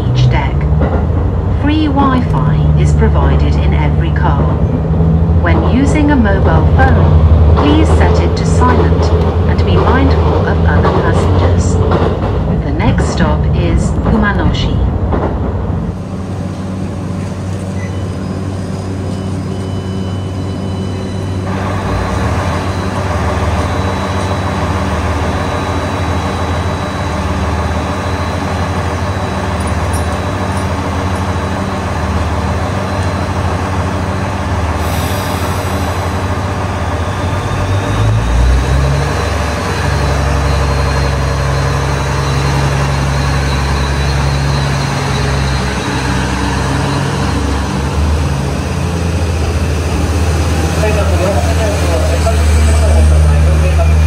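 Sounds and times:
diesel train engine running: 0.0s - 54.0s
air hiss: 34.8s - 36.2s.

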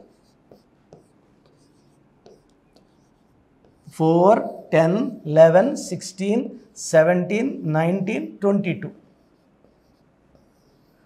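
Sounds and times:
marker pen squeaking on whiteboard: 0.0s - 5.2s, 9.0s - 11.0s.

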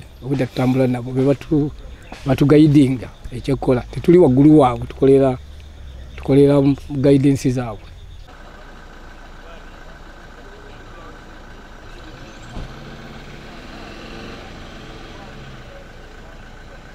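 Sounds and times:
faint men's voices: 0.0s - 16.9s
truck engines idling: 0.0s - 16.9s.

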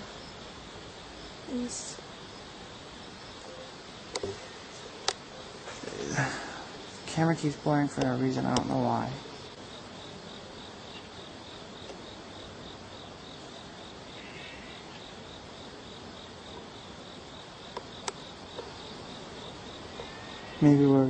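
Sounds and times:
insects chirping: 0.0s - 21.0s.

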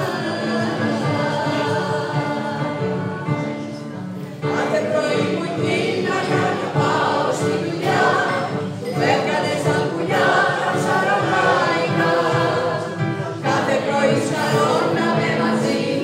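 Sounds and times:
electronic keyboard accompaniment: 0.0s - 16.0s
mixed choir singing: 0.0s - 16.0s.

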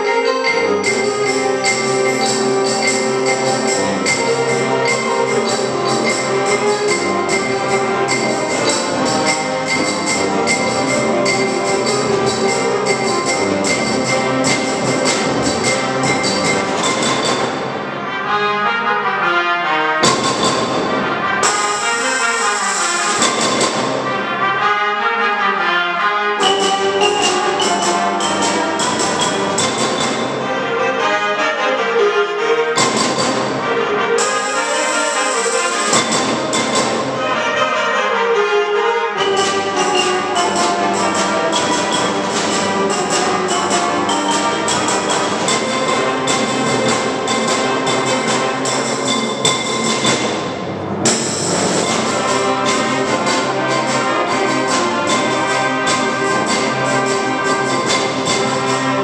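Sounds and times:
concert band playing brass: 0.0s - 59.0s.

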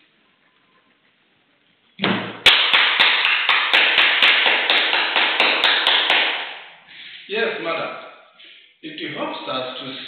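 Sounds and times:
hands clapping rhythmically: 2.4s - 6.8s.

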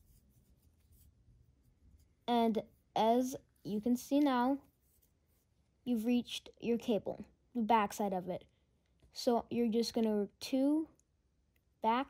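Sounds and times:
faint rustle of yarn: 0.0s - 3.7s, 4.6s - 5.6s.

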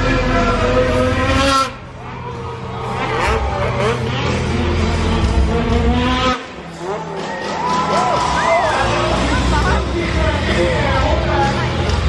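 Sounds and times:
snowmobile engine whining at high revs: 0.1s - 2.0s, 2.7s - 7.3s.

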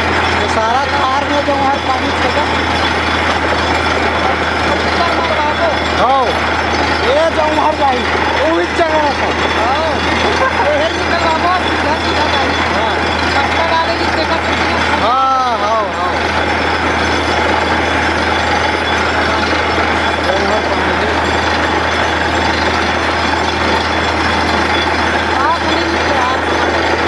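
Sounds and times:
drilling rig running loudly: 0.0s - 27.0s.

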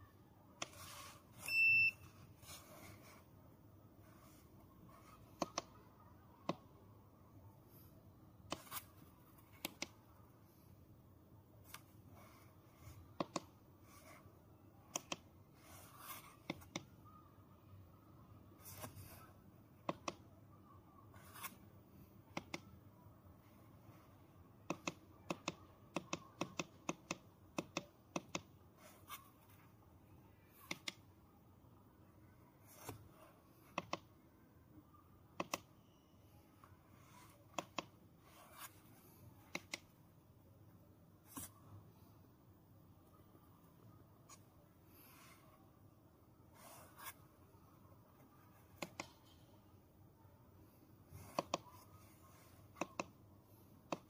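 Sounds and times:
short electronic beep: 1.4s - 2.1s.

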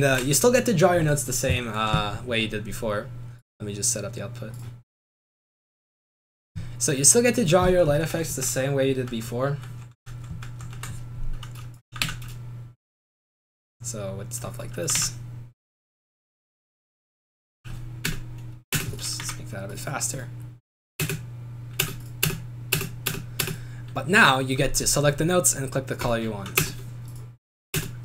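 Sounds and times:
low electrical hum: 0.0s - 4.8s, 6.6s - 12.7s, 13.8s - 15.5s, 17.7s - 28.0s.

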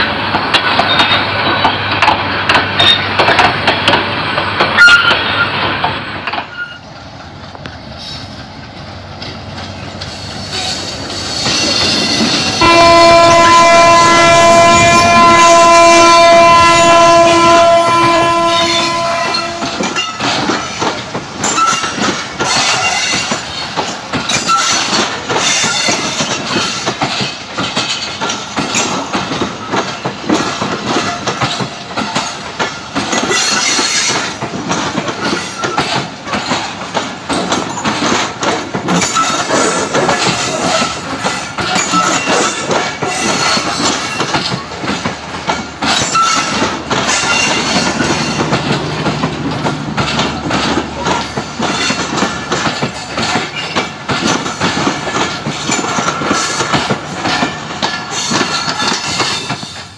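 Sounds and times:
passing train rumble: 0.0s - 59.9s
train wheels clickety-clack: 0.0s - 59.9s
loud train horn blast: 12.6s - 20.0s.

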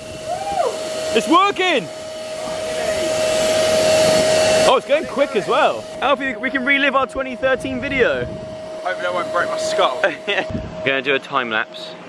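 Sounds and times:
electric air pump hissing and whining: 0.0s - 12.0s.

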